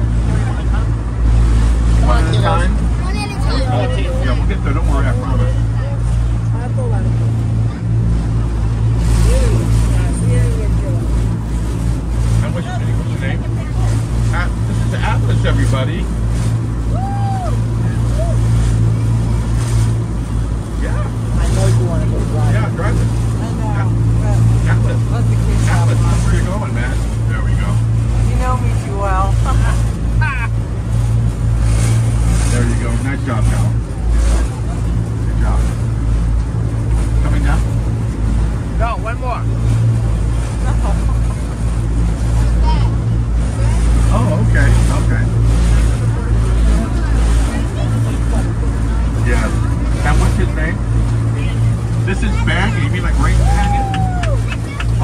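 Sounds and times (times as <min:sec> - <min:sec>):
boat engine drone: 0:00.0 - 0:55.0
water washing along hull: 0:00.0 - 0:55.0
passengers' voices: 0:45.6 - 0:55.0.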